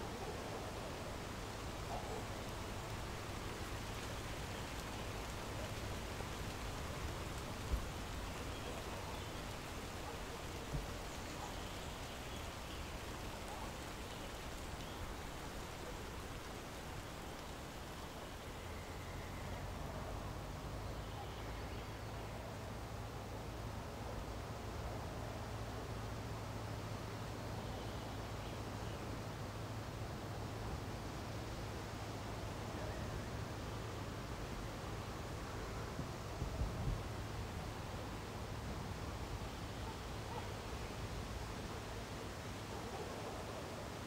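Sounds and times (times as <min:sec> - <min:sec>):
steady rain falling: 0:00.0 - 0:44.0.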